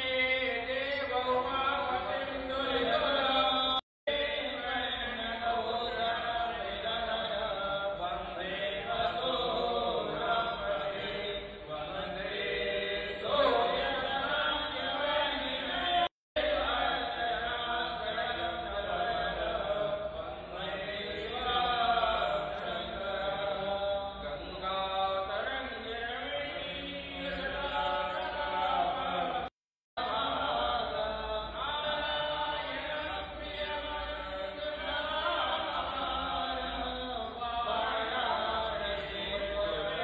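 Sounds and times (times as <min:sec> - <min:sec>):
men chanting: 0:01.8 - 0:40.0.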